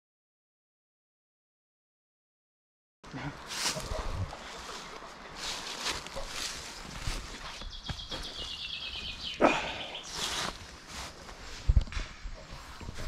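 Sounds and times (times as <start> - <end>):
footsteps on dirt path: 3.4 - 13.0
songbird singing fast trill: 7.7 - 10.3.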